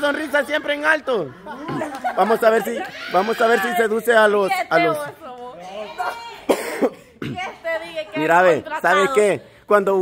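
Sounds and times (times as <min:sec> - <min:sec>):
cough-like vocal burst: 0:06.5 - 0:07.5.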